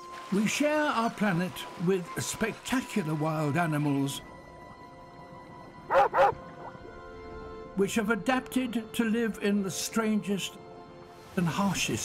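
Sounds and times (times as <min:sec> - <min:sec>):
soft background music: 0:00.0 - 0:12.0
dog-like barks: 0:05.9 - 0:06.7.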